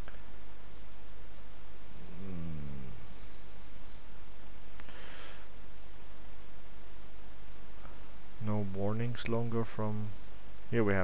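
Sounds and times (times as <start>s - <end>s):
microphone hiss and hum: 0.0s - 11.0s
man humming mm: 2.0s - 4.2s.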